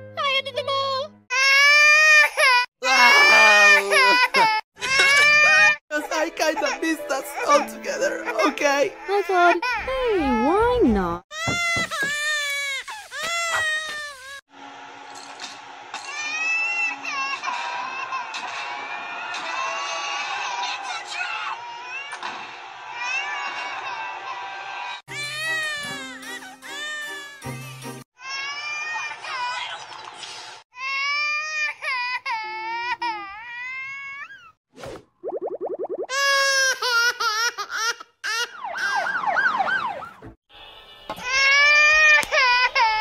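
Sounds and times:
cartoon baby crying: 1.3s - 5.8s
baby crying: 1.3s - 10.6s, 11.3s - 14.4s.

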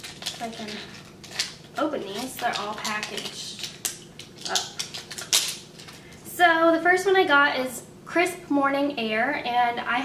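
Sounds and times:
packaging crinkling: 0.0s - 6.2s.

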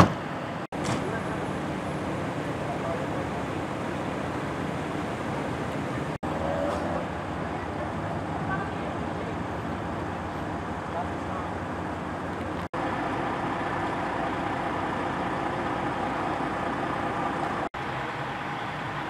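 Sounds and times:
traffic rumble: 0.0s - 19.0s.

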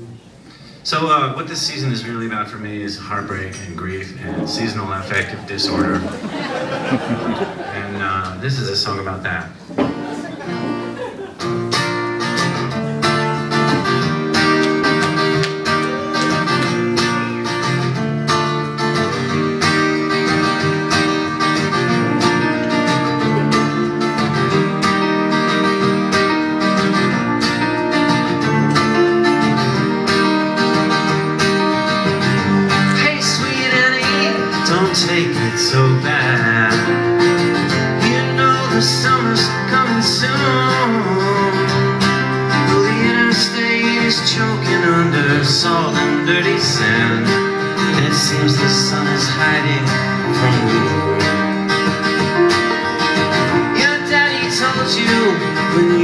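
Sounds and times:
strummed acoustic guitar: 2.0s - 56.0s
piano playing: 11.7s - 56.0s.

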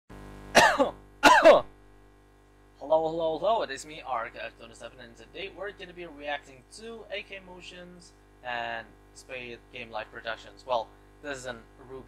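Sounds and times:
faint steady hum: 0.1s - 12.0s
man clearing his throat: 0.5s - 1.7s.

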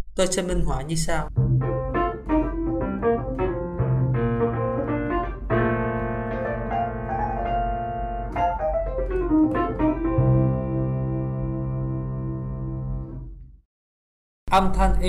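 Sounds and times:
electric piano playing: 1.3s - 13.4s.

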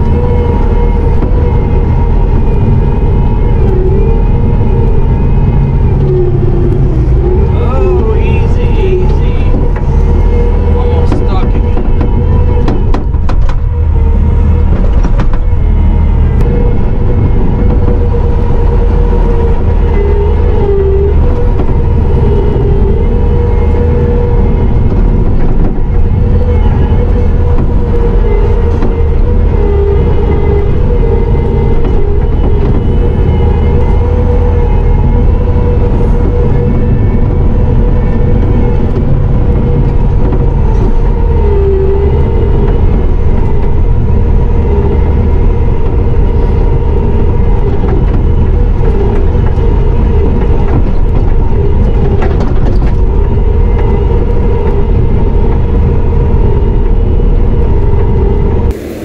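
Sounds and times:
diesel engine running with whine: 0.0s - 59.0s.

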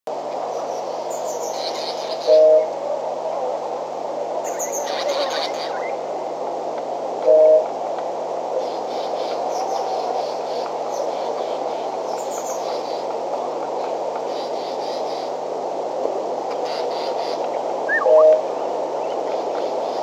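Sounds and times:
steady hiss: 0.1s - 20.0s
high bird chirps: 17.9s - 18.4s.

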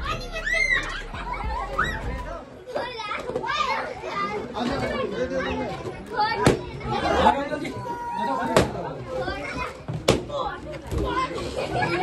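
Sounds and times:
children and adults talking: 0.0s - 12.0s.

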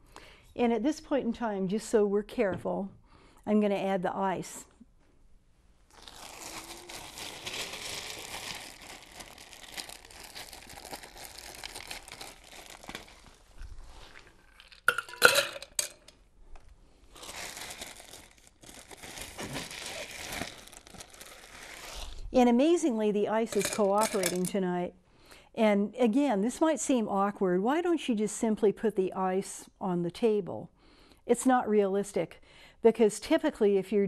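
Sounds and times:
ice rustling and crunching: 5.9s - 15.0s, 17.2s - 22.2s
ice clinking into metal shaker: 14.9s - 16.1s, 23.5s - 24.5s.

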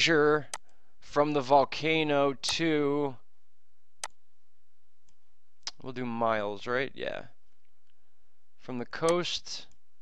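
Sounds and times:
man speaking: 0.0s - 3.2s, 5.6s - 7.4s, 8.6s - 9.7s.

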